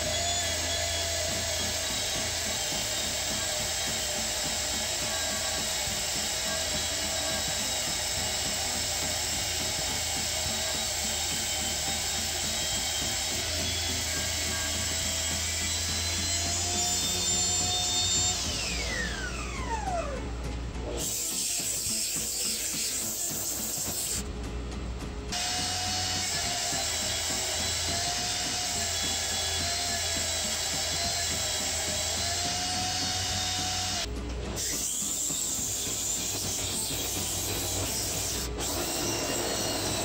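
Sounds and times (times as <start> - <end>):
blade cutting wood: 0.0 - 24.3, 25.3 - 40.0
table saw whine: 0.0 - 24.3, 25.3 - 40.0.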